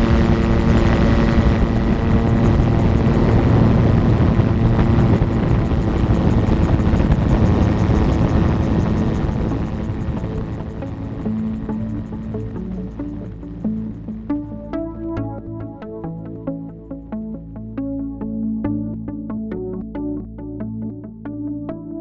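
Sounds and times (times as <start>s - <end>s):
heavy wind noise: 0.0s - 14.2s
aircraft engine at full power: 0.0s - 14.4s.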